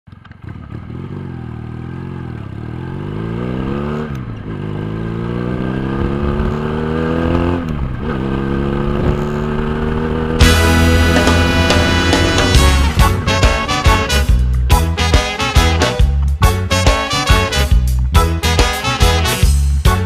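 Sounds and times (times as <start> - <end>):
motorcycle engine accelerating: 0.1 - 19.5.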